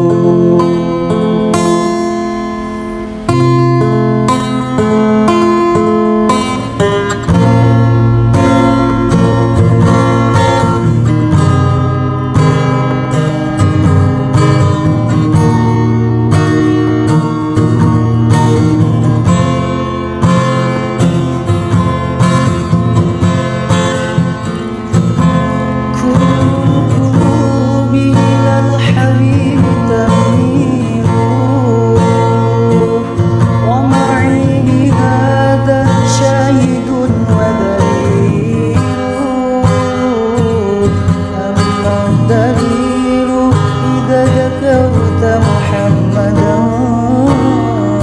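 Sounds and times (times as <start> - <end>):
acoustic guitar chords: 0.0 - 48.0.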